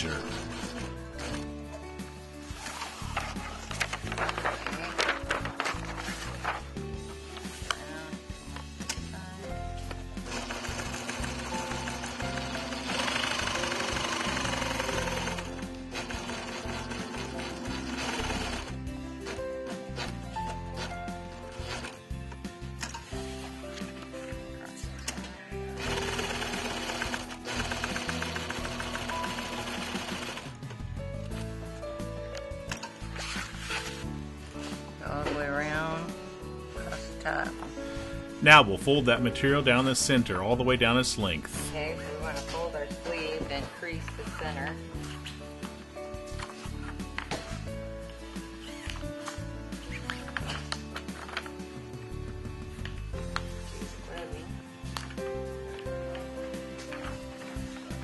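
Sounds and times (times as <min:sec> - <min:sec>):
background music: 0:00.0 - 0:58.0
sewing machine stitching: 0:10.2 - 0:18.7, 0:25.8 - 0:30.5.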